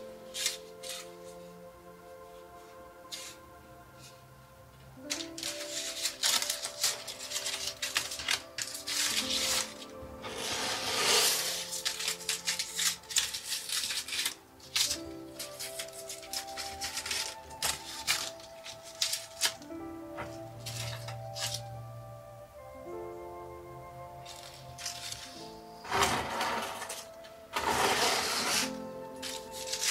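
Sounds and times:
soft background music: 0.0s - 29.9s
dry leaves crackling and rustling: 5.1s - 21.7s, 24.1s - 29.9s.

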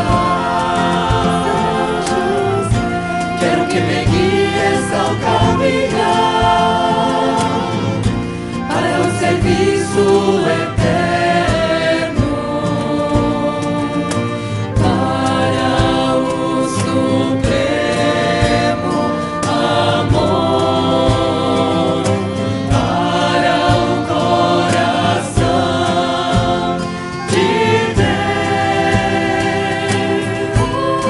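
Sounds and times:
women singing a hymn in harmony: 0.0s - 31.0s.

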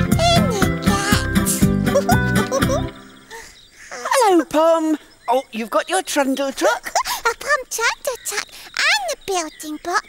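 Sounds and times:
high-pitched character voice: 0.0s - 2.8s.

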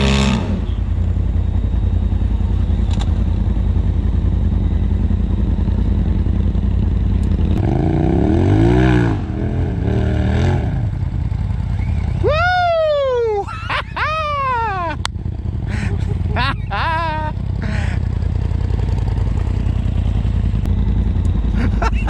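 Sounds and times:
engine idling and revving: 0.0s - 22.0s.

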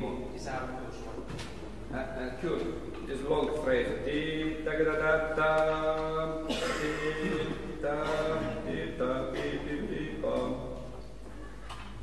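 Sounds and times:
man singing held notes: 1.9s - 11.0s.

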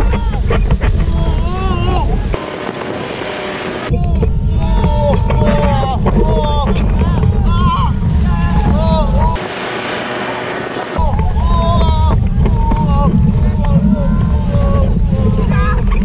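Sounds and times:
riders yelling: 0.0s - 16.0s
wind buffeting microphone: 0.0s - 16.0s
rushing water: 6.0s - 16.0s.

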